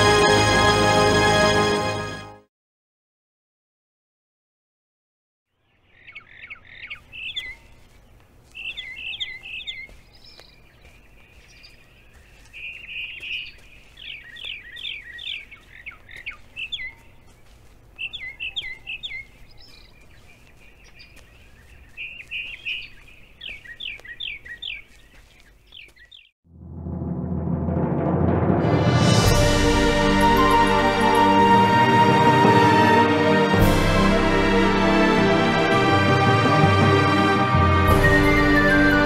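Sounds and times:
songbird chirping: 0:05.5 - 0:26.4, 0:29.0 - 0:39.0.

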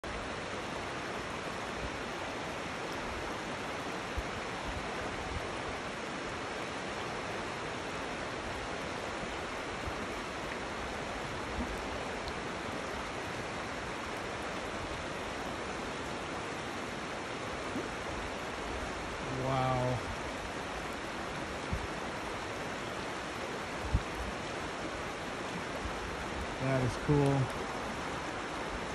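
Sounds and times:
rocky river flowing: 0:00.0 - 0:28.9
person's voice: 0:19.3 - 0:20.0, 0:26.6 - 0:27.5.

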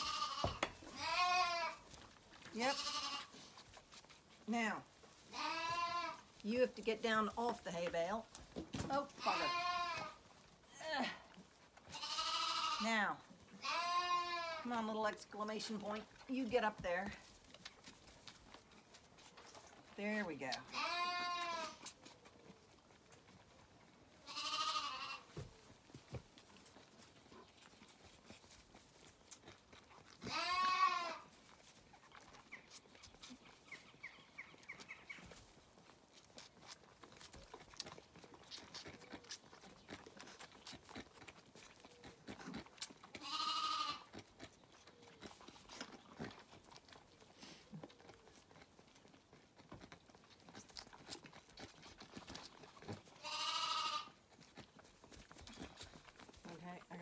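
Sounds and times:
lambs bleating: 0:00.0 - 0:01.9, 0:02.6 - 0:03.4, 0:05.3 - 0:06.3, 0:09.1 - 0:10.2, 0:11.9 - 0:14.7, 0:20.6 - 0:21.9, 0:24.2 - 0:25.4, 0:30.2 - 0:31.3, 0:43.1 - 0:44.2, 0:53.2 - 0:54.2
faint clicks and smacks: 0:31.5 - 0:43.3, 0:44.0 - 0:53.2, 0:54.2 - 0:57.0.

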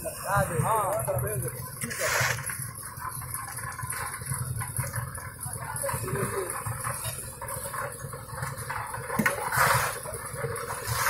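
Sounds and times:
concrete mixer engine droning: 0:00.0 - 0:11.0.

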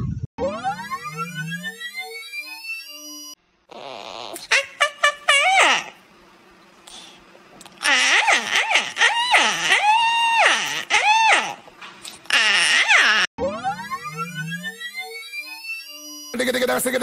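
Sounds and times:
cockatiel screeching: 0:03.8 - 0:06.0, 0:07.8 - 0:11.6, 0:12.3 - 0:13.3.

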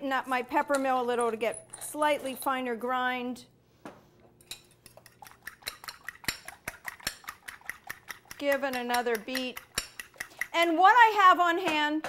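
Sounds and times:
fork beating eggs in bowl: 0:04.4 - 0:10.8.

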